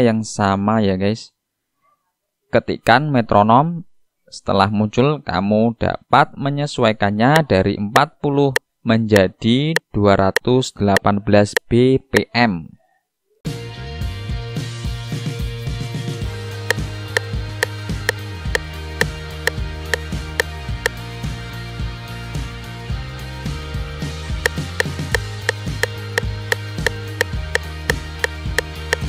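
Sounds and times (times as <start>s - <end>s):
background music: 13.5s - 29.0s.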